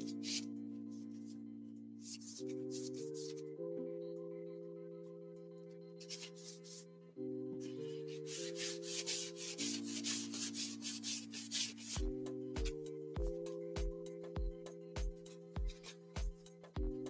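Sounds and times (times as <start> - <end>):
soft background music: 0.0 - 17.0
paper towel rubbing strokes: 8.1 - 12.0.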